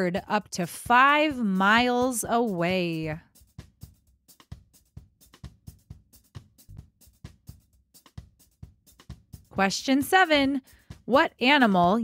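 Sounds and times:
background music with drum beat: 0.6s - 12.0s.

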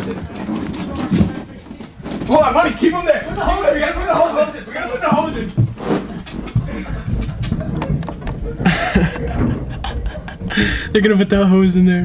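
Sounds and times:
low muffled voices: 0.0s - 12.0s.

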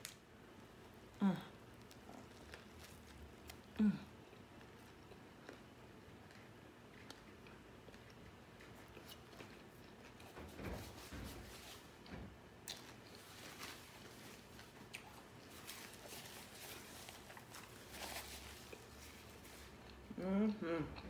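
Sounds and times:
person chewing food: 0.0s - 10.5s, 11.6s - 21.0s.

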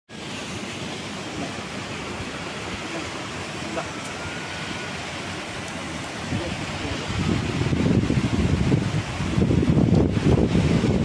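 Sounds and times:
rushing outdoor hiss: 0.1s - 11.0s
faint murmurs: 1.2s - 7.4s.

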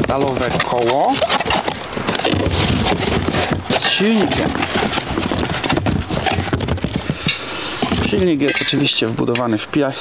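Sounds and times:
cardboard rustling and scraping: 0.0s - 9.2s.

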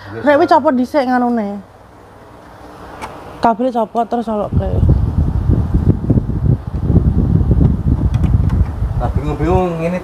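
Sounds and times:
wind buffeting microphone: 4.2s - 10.0s.

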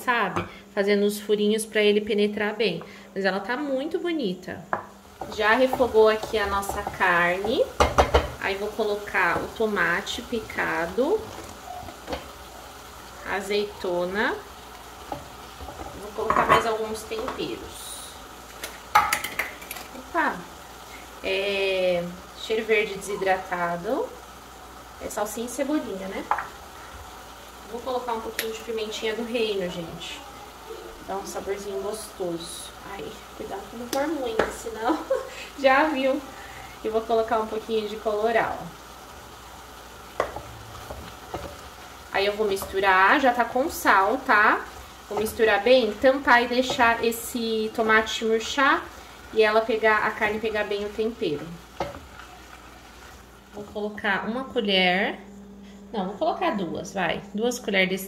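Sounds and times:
meat sizzling in a pot: 0.0s - 57.6s.

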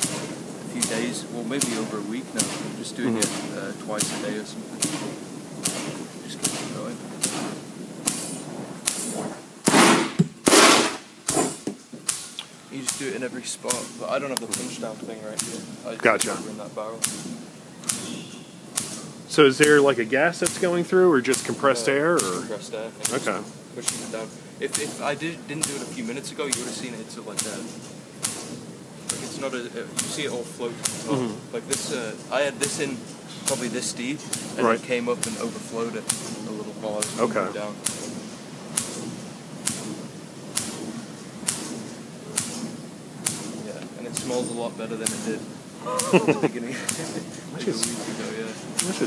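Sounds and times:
faint hiss: 0.0s - 49.0s
sharp air pops: 0.0s - 49.0s
steady low background noise: 0.0s - 49.0s.

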